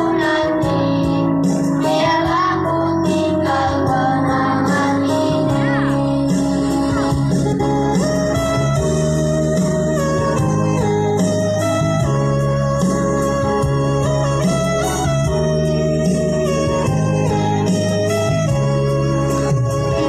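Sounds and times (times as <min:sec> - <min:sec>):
organ-voiced keyboard chords: 0:00.0 - 0:20.0.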